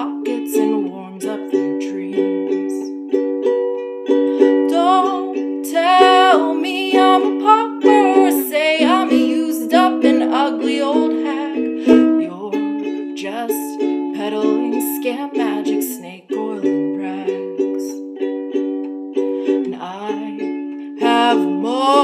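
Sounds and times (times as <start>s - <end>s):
woman singing: 0.0s - 3.0s, 4.3s - 18.0s, 19.4s - 22.0s
ukulele strumming: 0.0s - 22.0s.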